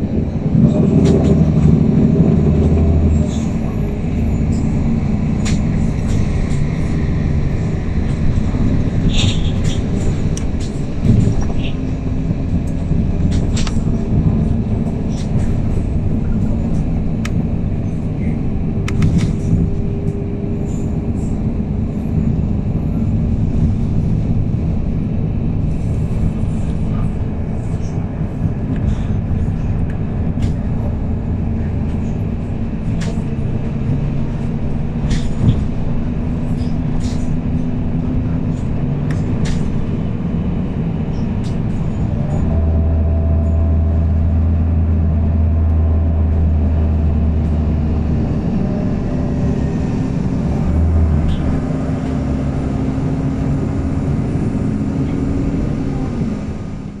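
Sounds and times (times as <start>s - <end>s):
bus engine droning: 0.0s - 57.0s.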